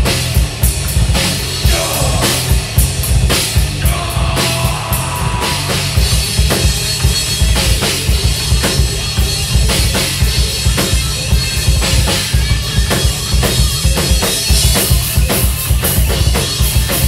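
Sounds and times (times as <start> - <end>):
drum kit beat: 0.0 - 17.0
electric bass: 0.0 - 17.0
electric guitar: 0.0 - 17.0.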